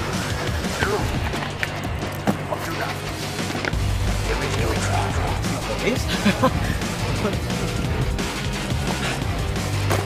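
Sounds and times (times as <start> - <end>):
music with a low beat: 0.0 - 10.0
voice: 4.2 - 6.5.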